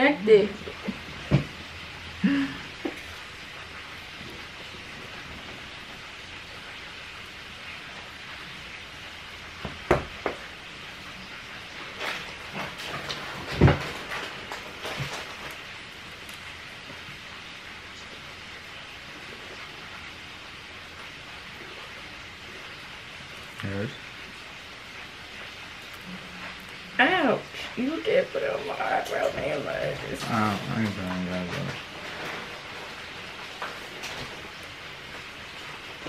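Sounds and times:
light crackling: 0.1s - 36.0s.

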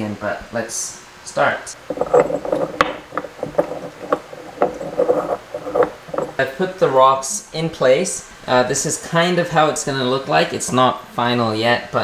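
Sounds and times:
rocks scraping on glass: 1.8s - 7.0s.

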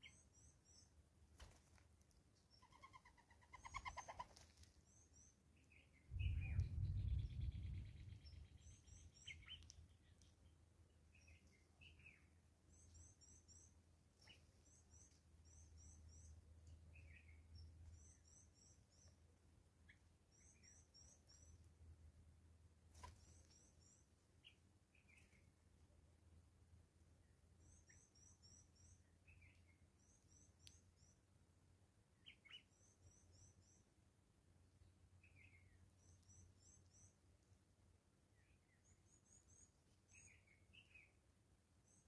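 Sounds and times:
bird trilling song: 0.0s - 0.9s, 2.5s - 4.3s, 4.9s - 19.2s, 19.9s - 21.6s, 27.6s - 31.2s, 32.2s - 33.8s, 35.2s - 37.2s, 38.4s - 41.2s
high-pitched thin bird calls: 2.5s - 4.6s
low rumble and rustle: 6.0s - 8.6s.

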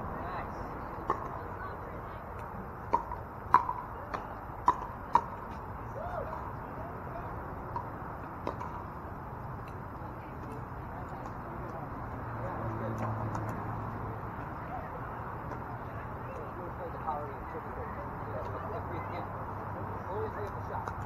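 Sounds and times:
outdoor background noise: 0.0s - 21.0s.

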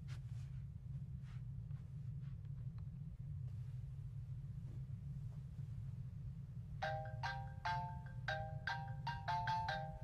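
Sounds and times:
steady low hum: 0.0s - 10.0s
phone ringtone chime melody: 6.8s - 10.0s.

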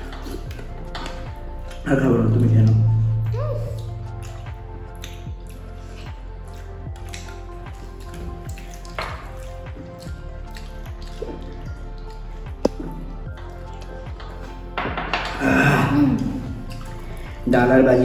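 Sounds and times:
chewing mouth sounds: 0.0s - 2.9s, 3.5s - 17.5s
small clicks of eating: 0.0s - 2.9s, 3.6s - 15.4s, 16.2s - 17.4s
background music: 0.0s - 18.0s
fingers squishing rice and curry: 3.8s - 15.4s.

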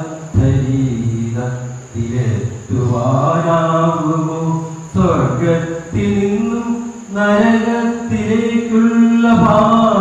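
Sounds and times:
man chanting a poem: 0.0s - 10.0s.

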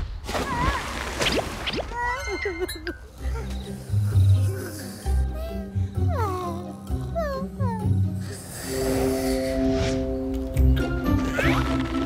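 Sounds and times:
soft background music: 2.2s - 12.0s
cartoon snoring with whistles: 8.2s - 10.0s.

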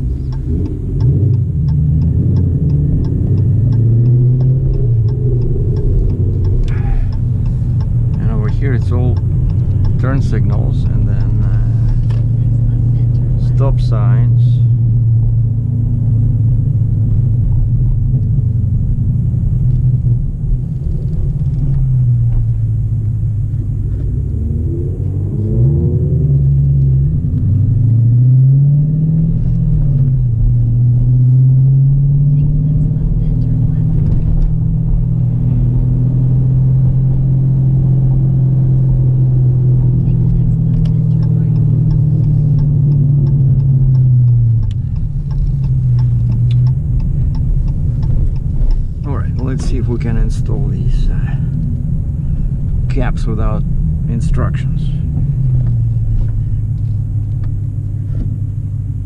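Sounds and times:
regular ticking: 0.0s - 18.3s, 26.6s - 58.7s
car engine from inside cabin: 0.0s - 59.0s.

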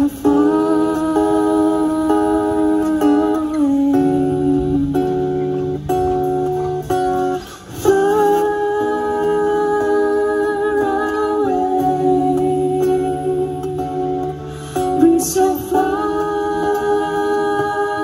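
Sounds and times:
bass: 0.0s - 18.0s
guitar: 0.0s - 18.0s
melody of long held notes: 0.0s - 18.0s.

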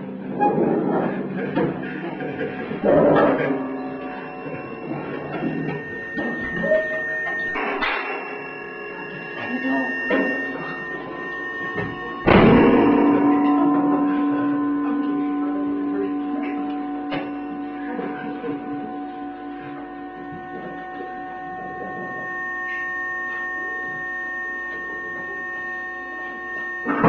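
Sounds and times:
steady tone drone: 0.0s - 27.0s
loud hit: 9.0s - 19.5s.

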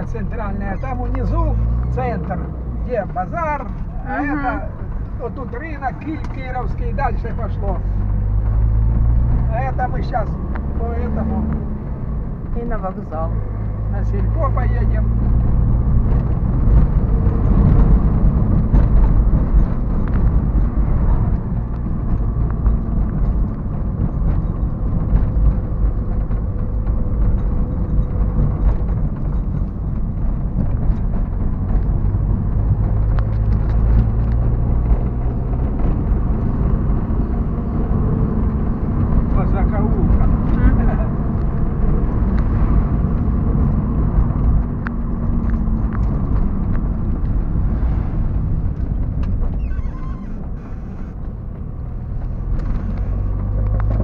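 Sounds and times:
car engine and road noise: 0.0s - 54.0s.

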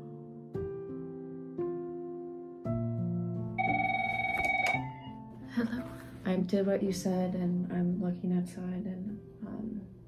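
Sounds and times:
soft piano music: 0.0s - 10.0s
electronic telephone ring: 3.6s - 5.1s.

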